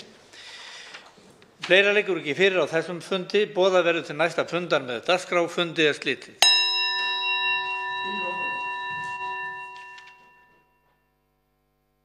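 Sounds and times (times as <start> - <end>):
small metal desk bell ringing: 6.4 - 10.9.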